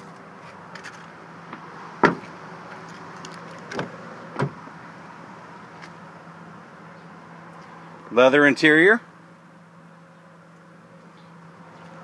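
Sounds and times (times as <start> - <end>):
truck door slamming: 1.5 - 2.3, 3.7 - 4.7.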